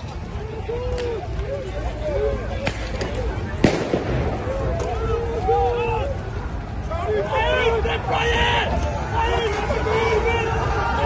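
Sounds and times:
crowd shouting: 0.0 - 11.0
sharp cracks: 2.6 - 5.0
loud bang: 3.6 - 4.6.

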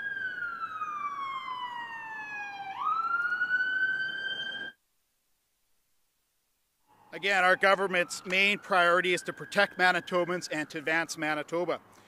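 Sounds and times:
emergency vehicle siren wailing: 0.0 - 4.8, 6.9 - 11.7.

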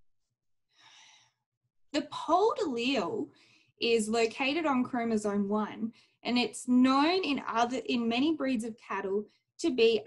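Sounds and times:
woman breathing in: 0.7 - 1.5
woman speaking: 2.0 - 10.0.

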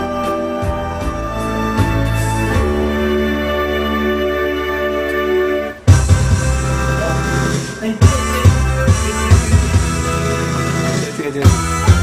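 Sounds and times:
instrumental backing music chords: 0.0 - 12.0.

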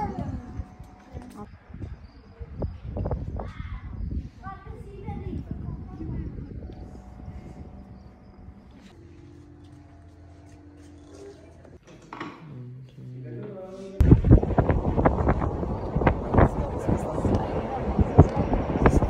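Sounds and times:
wind buffeting microphone: 0.0 - 8.7, 14.0 - 19.0
steady low hum: 0.0 - 11.8, 13.9 - 19.0.

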